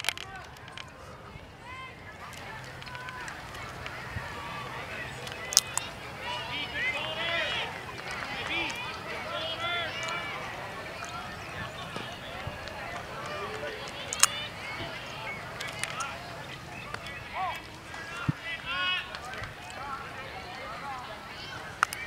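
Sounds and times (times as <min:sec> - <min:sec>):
children shouting and cheering: 0:01.6 - 0:22.0.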